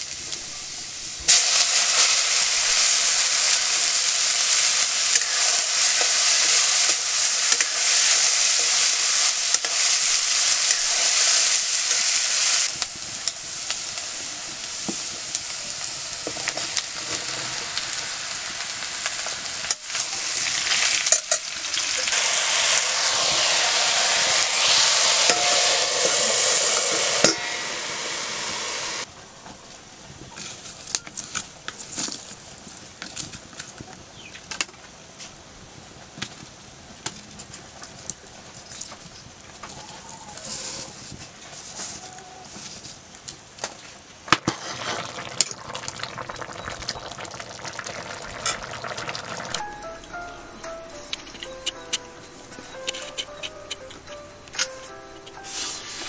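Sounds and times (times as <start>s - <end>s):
vegetables sizzling in a wok: 0.0s - 29.1s, 43.6s - 56.0s.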